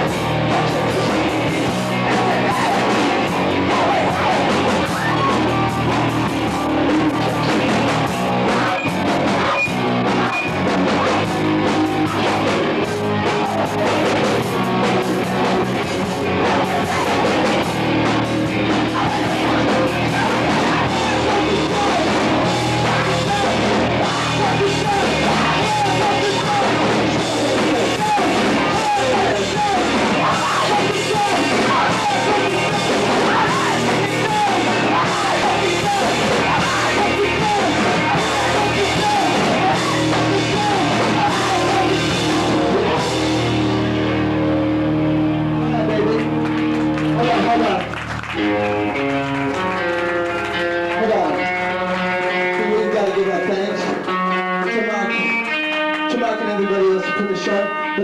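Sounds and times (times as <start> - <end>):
rock band playing live: 0.0 - 58.0.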